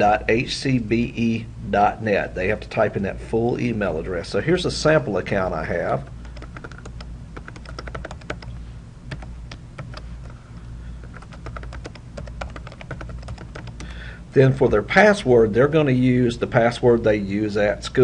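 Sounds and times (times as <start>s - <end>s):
low steady hum: 0.0s - 18.0s
computer keyboard key clicks: 6.2s - 8.5s, 9.1s - 10.1s, 11.1s - 13.9s.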